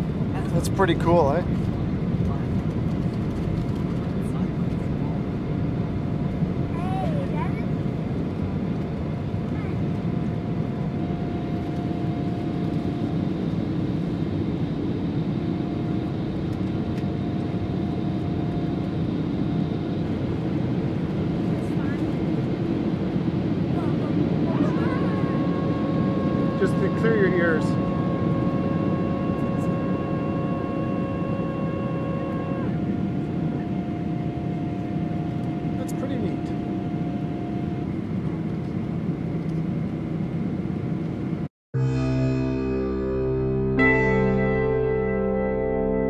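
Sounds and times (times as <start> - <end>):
jet engine and airflow noise: 0.0 - 41.5
steady hum tones: 0.0 - 46.0.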